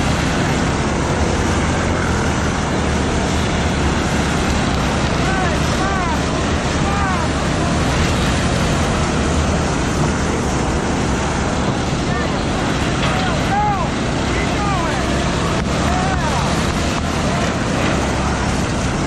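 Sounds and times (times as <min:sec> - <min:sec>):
race car engines droning: 0:00.0 - 0:19.0
rising and falling engine whines: 0:00.0 - 0:19.0.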